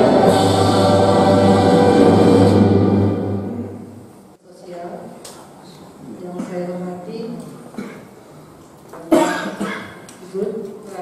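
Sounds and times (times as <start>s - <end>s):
person coughing: 7.8s - 8.1s, 9.1s - 10.0s.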